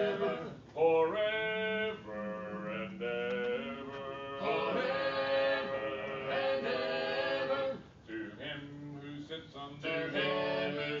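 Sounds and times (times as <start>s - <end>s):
voices singing in harmony: 0.0s - 11.0s.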